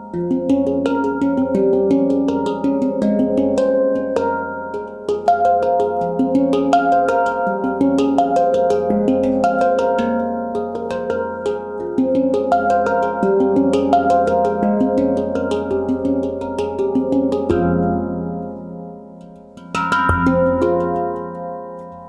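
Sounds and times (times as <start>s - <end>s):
handpan notes ringing: 0.0s - 22.0s.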